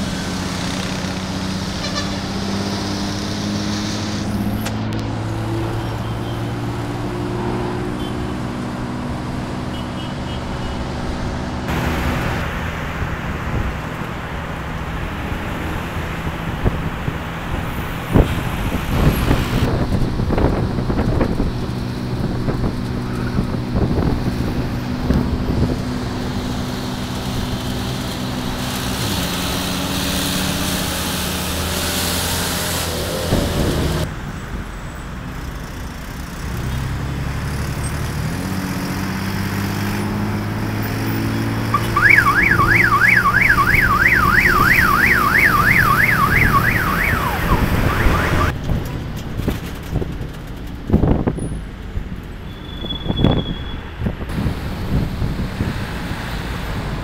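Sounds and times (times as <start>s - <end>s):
bus engine running: 0.0s - 52.5s
electronic siren warbling: 41.7s - 48.5s.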